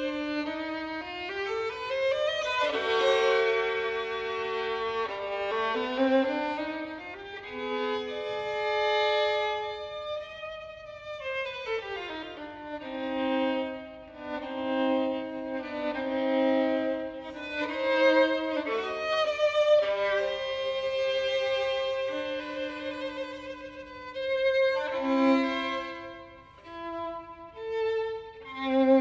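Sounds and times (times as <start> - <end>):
solo violin playing: 0.0 - 29.0.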